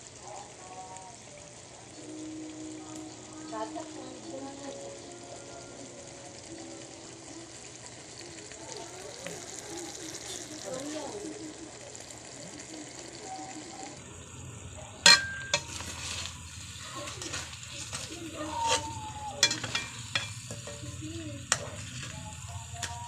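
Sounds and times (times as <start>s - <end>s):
sauce simmering and sizzling: 0.0s - 23.0s
utensil striking pan: 15.0s - 23.0s
stirring scrapes and clicks: 15.5s - 23.0s.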